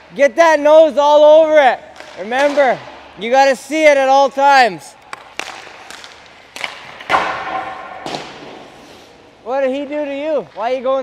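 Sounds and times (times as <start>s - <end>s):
hockey stick hitting puck: 1.1s - 8.8s
puck impact ringing: 5.0s - 8.8s.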